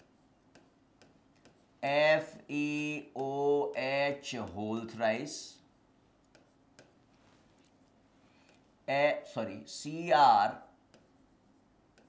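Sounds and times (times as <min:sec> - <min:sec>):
marker clicking on whiteboard: 0:00.0 - 0:02.3, 0:06.2 - 0:08.7, 0:10.8 - 0:12.0
man speaking: 0:01.8 - 0:05.7, 0:08.9 - 0:10.8.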